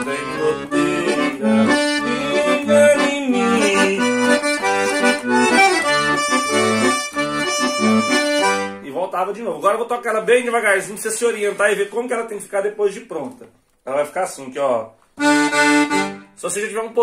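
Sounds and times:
piano accordion playing: 0.0 - 9.0, 15.2 - 16.7.

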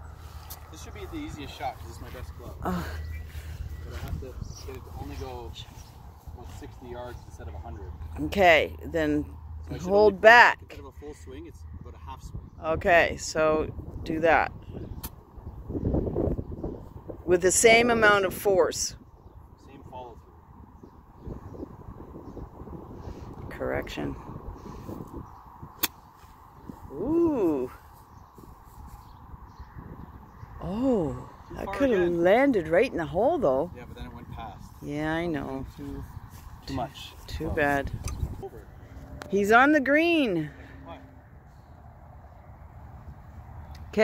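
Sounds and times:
golf club striking ball: 25.8 - 26.1.

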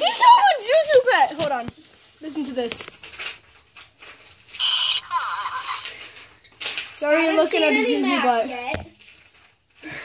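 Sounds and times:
toy chirping and beeping: 4.6 - 6.0.

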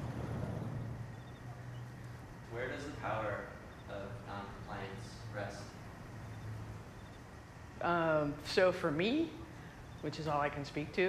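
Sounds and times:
faint hiss: 0.0 - 11.0
low steady rumble: 0.0 - 11.0.

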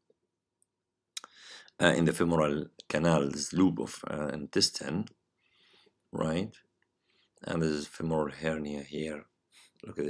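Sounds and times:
soft breathy hiss: 1.2 - 1.8.

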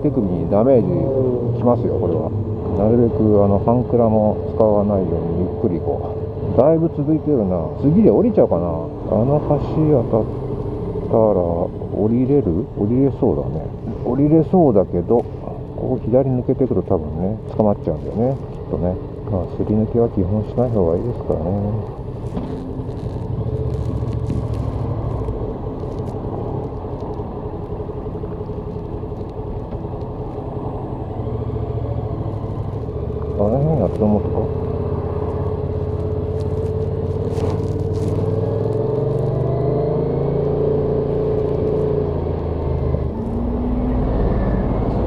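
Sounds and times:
motorcycle engine running: 8.9 - 42.6.

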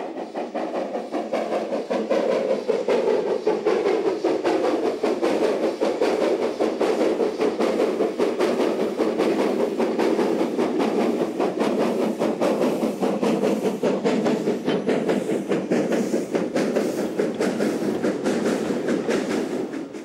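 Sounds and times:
steam locomotive exhaust beating: 0.0 - 20.0
train rumbling on rails: 0.0 - 20.0.

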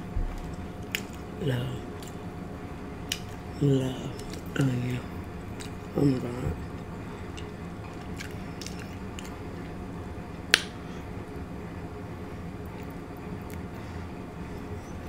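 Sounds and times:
wet squishing: 0.3 - 2.3, 3.0 - 9.8.

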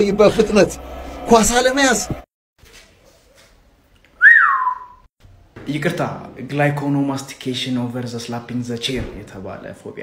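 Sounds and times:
whistled note sliding down: 4.2 - 5.1.

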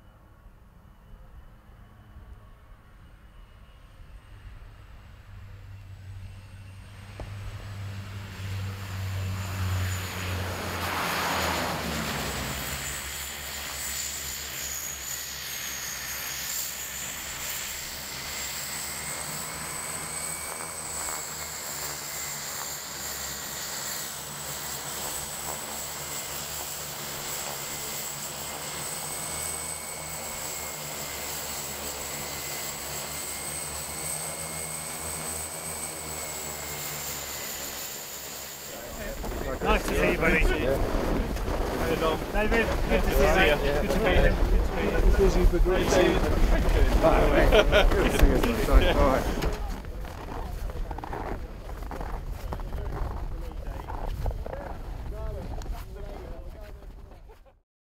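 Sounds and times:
high turbine whine: 0.0 - 56.6
turboprop plane landing: 0.0 - 57.3.

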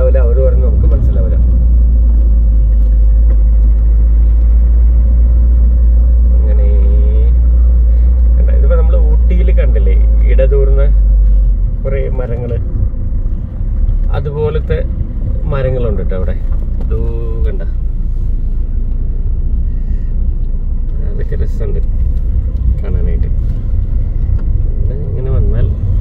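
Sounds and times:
car driving rumble: 0.0 - 26.0.

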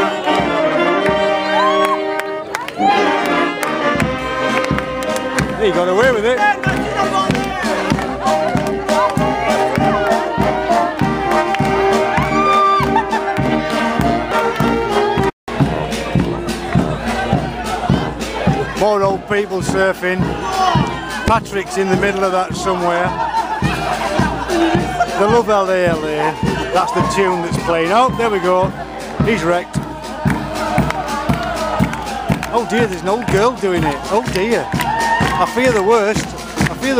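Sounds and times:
brass band playing: 0.0 - 36.9
crowd voices: 0.0 - 36.9.

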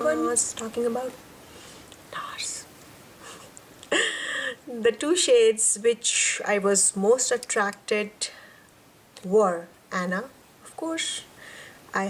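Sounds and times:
woman whispering: 2.0 - 2.7
woman laughing: 3.2 - 4.8.

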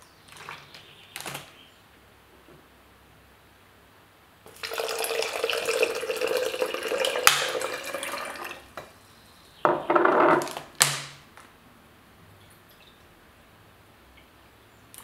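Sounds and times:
water pouring into glass: 4.5 - 8.8.

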